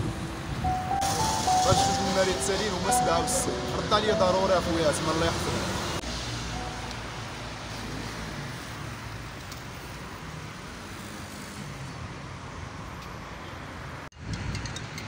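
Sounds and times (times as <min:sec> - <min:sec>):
road traffic passing cars: 0:00.0 - 0:15.0.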